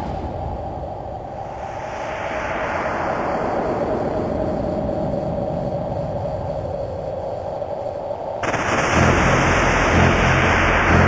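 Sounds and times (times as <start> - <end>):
bright rush of noise: 1.4 - 4.7, 8.4 - 11.0
heavy pulsing bass: 8.4 - 11.0.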